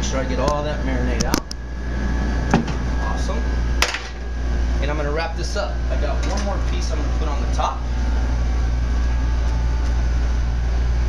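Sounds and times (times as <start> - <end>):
ventilation hum: 0.0 - 11.0.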